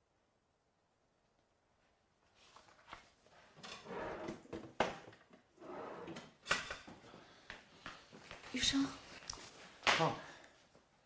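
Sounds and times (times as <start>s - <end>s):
faint paper rustles: 2.2s - 3.6s.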